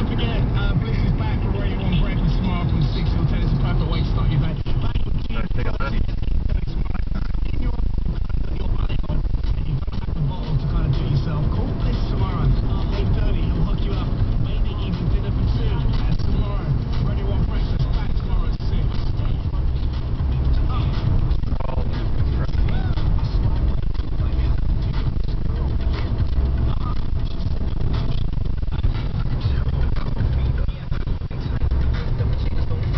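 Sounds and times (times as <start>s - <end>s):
car road and engine rumble: 0.0s - 32.9s.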